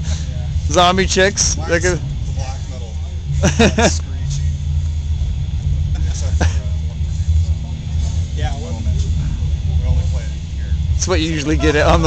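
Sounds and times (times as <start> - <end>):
faint voices talking: 0.0 - 12.0
steady low rumble: 0.0 - 12.0.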